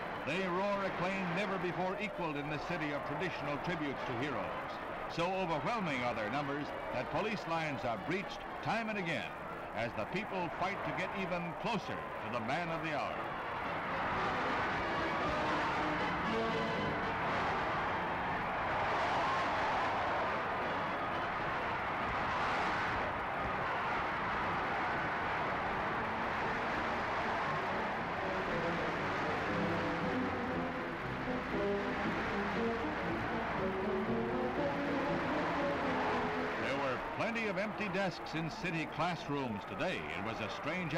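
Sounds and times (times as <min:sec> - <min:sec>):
crowd roaring and cheering: 0:00.0 - 0:40.9
music: 0:00.0 - 0:40.9.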